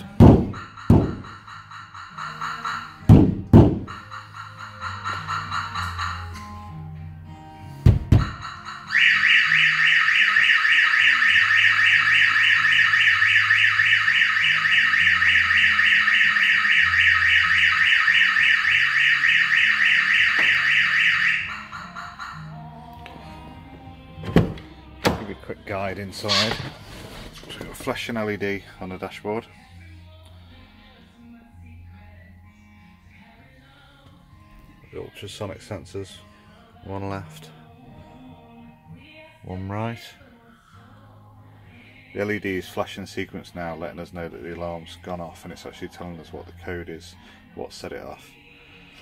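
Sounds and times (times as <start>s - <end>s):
van door thuds: 0.2s - 1.2s, 3.1s - 3.9s, 24.2s - 25.4s
electronic alarm siren: 0.5s - 6.5s, 8.2s - 22.6s.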